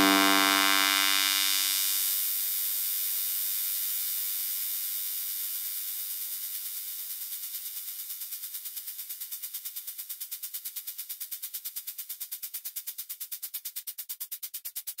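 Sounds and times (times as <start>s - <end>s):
pulsing wobble: 0.0s - 1.2s
held synthesizer tone: 0.0s - 1.3s.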